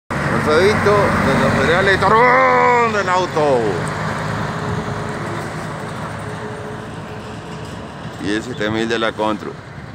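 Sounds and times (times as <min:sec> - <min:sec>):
truck diesel engine driving away: 0:00.1 - 0:09.9
truck tyres on road: 0:00.1 - 0:09.9.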